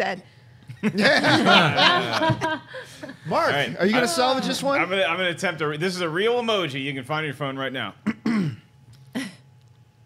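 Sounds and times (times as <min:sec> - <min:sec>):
man clearing throat: 0:08.0 - 0:09.4.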